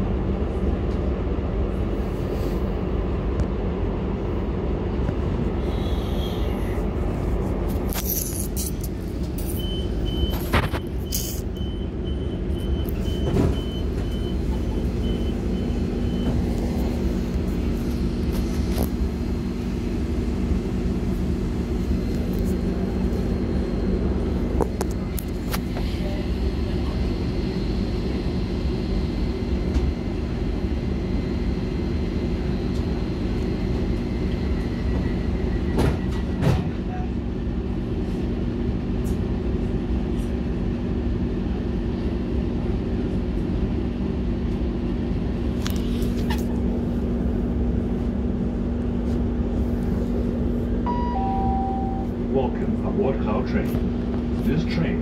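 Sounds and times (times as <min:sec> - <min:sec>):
train rumble and hum: 0:00.0 - 0:55.0
repeated high beep: 0:50.9 - 0:52.1.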